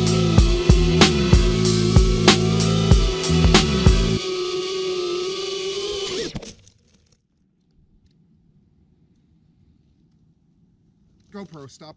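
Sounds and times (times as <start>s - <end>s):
drone hitting leaves: 0.0s - 4.8s
quadcopter motors whirring: 0.0s - 6.6s.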